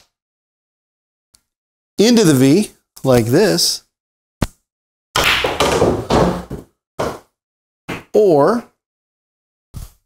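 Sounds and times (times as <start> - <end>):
pool balls knocking: 5.2 - 7.3
ball rolling inside pool table: 5.4 - 7.3.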